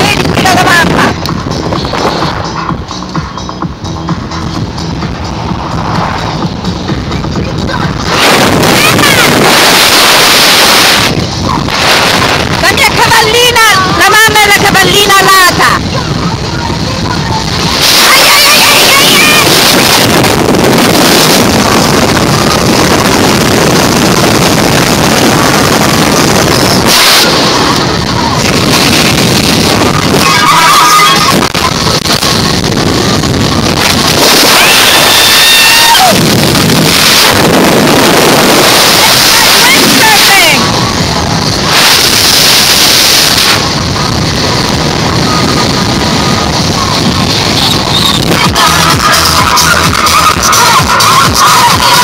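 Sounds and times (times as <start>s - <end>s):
road noise on dirt road: 0.0s - 52.0s
wind buffeting microphone: 0.0s - 52.0s.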